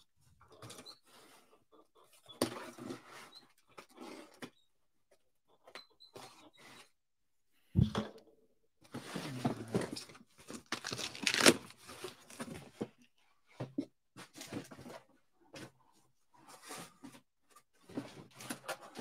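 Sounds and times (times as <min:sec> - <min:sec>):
cardboard tearing and rustling: 0:10.4 - 0:12.4.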